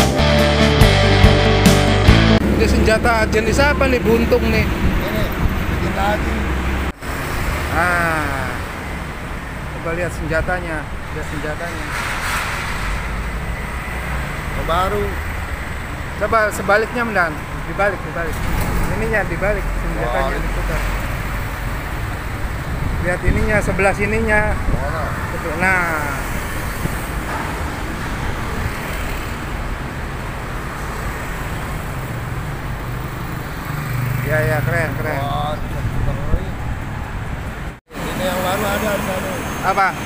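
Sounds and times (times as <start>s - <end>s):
vehicle passing: 2.0s - 40.0s
low rumble of road traffic: 2.4s - 40.0s.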